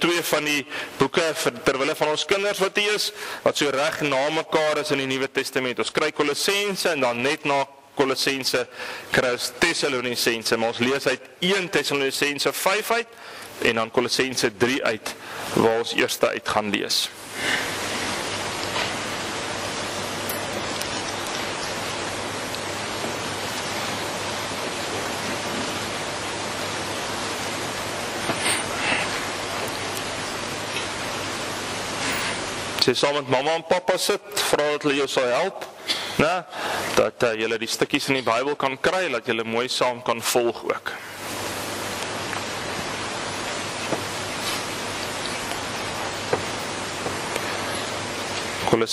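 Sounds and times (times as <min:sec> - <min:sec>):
person speaking: 0:00.0 - 0:18.8
steady hiss: 0:00.0 - 0:48.9.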